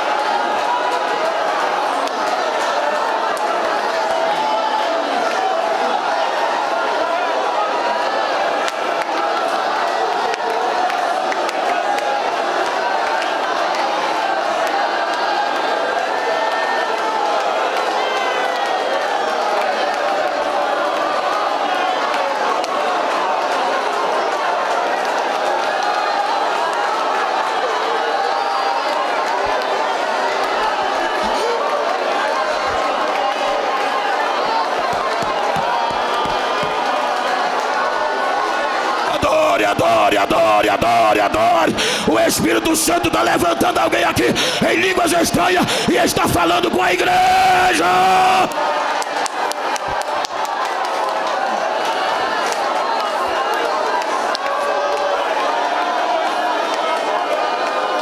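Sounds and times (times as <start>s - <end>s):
congregation praying aloud: 0.0s - 58.0s.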